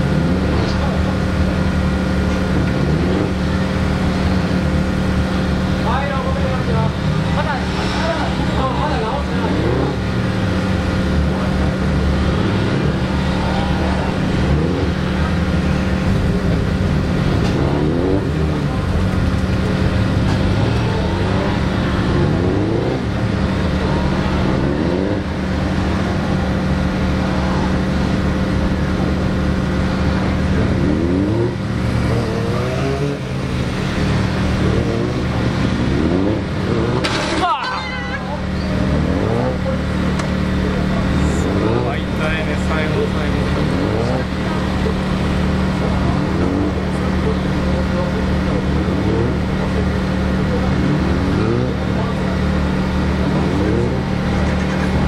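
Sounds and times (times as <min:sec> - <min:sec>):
motorcycle engine revving: 0:00.0 - 0:37.6, 0:38.2 - 0:55.0
other motorcycles running: 0:00.0 - 0:55.0
harsh high-pitched crash noise: 0:37.0 - 0:38.0.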